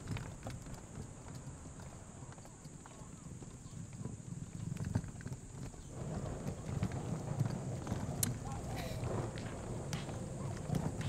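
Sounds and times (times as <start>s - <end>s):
suitcase wheels rumbling on pavement: 0.0s - 11.0s.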